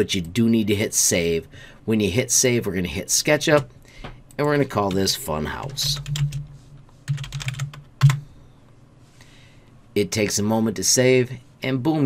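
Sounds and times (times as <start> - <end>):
computer keyboard typing: 4.8 - 8.2.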